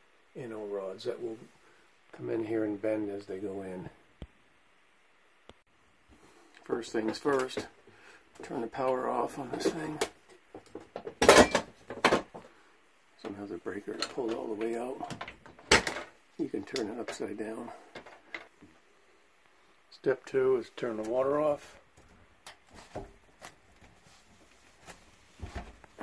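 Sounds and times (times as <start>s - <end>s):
metal cover clanking open: 11.2s - 12.2s
faint handling sounds: 11.7s - 26.0s.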